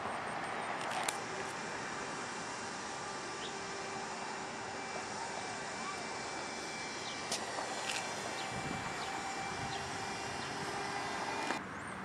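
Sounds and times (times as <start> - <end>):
distant traffic: 0.0 - 12.0.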